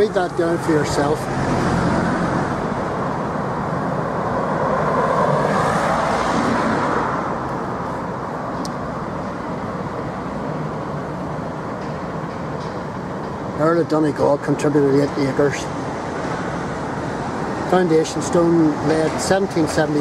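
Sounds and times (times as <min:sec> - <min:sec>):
street traffic rumble: 0:00.0 - 0:20.0
vehicle passing close: 0:00.2 - 0:08.2.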